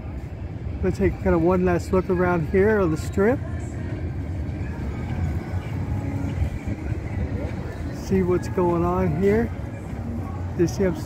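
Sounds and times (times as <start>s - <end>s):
low rumble of cars: 0.0s - 11.0s.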